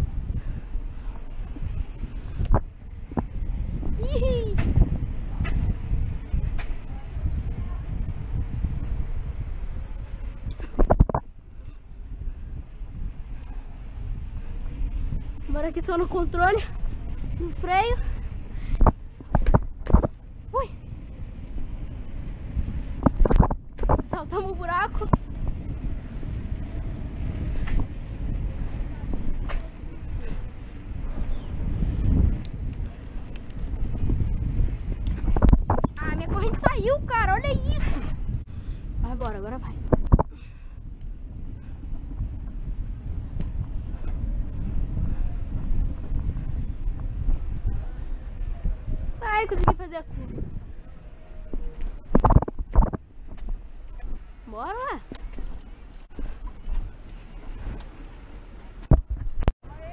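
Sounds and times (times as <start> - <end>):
bicycle knocking and rattling: 0.0 - 59.9
wind rumbling on microphone: 0.0 - 59.9.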